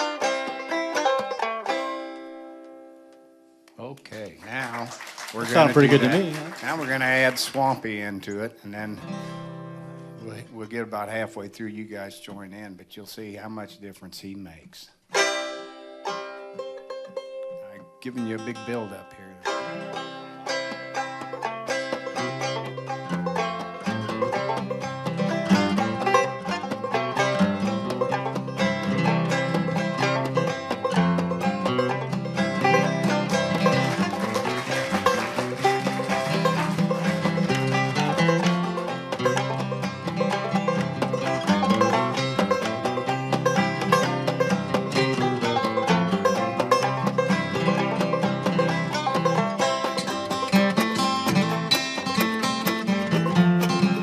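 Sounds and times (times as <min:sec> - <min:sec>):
banjo lead: 0:00.0 - 0:03.4, 0:04.2 - 0:54.0
mandolin: 0:00.0 - 0:03.4, 0:04.1 - 0:54.0
upright bass: 0:03.8 - 0:14.0, 0:21.8 - 0:54.0.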